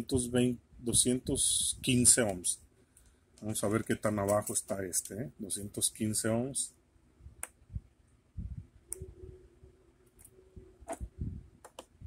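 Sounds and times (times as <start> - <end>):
test probes clicking: 10.1 - 12.0.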